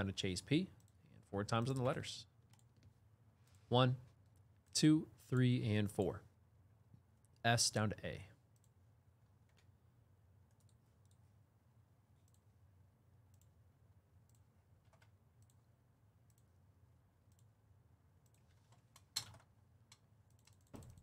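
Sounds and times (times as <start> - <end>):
faint room hum: 0.0 - 21.0
computer mouse clicks: 10.5 - 11.2, 12.2 - 12.5, 13.3 - 13.5, 14.3 - 15.6, 16.3 - 16.5, 17.3 - 17.5, 18.2 - 21.0.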